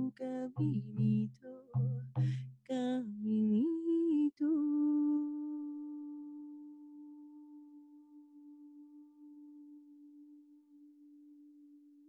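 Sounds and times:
woman humming a long note: 0:04.5 - 0:11.6.

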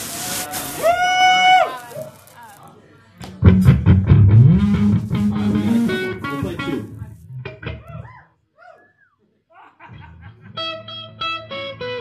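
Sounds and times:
electric guitar through amplifier: 0:03.4 - 0:08.0, 0:10.4 - 0:12.0.

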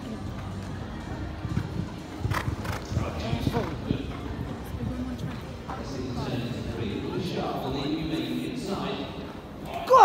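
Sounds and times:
horse hooves cantering on sand: 0:00.3 - 0:06.1.

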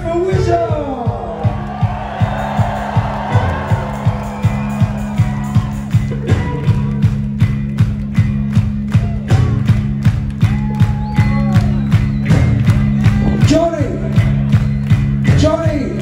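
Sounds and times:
kick drum beat: 0:00.0 - 0:16.0.

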